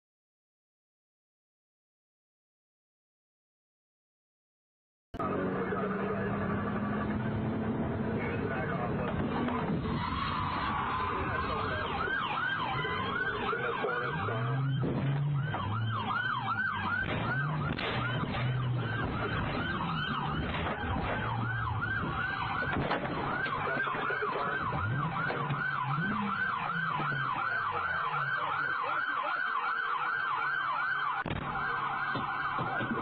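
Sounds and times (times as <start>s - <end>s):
engine and road hum: 5.2s - 33.0s
police siren yelping: 8.4s - 33.0s.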